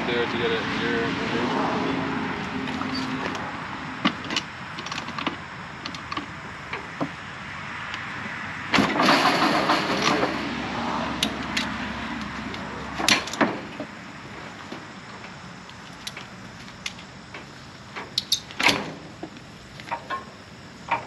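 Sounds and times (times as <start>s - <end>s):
dirt bike engine turning over: 8.8s - 10.6s.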